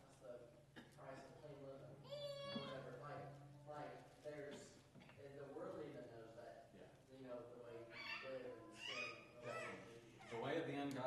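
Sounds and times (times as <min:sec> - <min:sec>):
distant person speaking: 0:07.2 - 0:10.9.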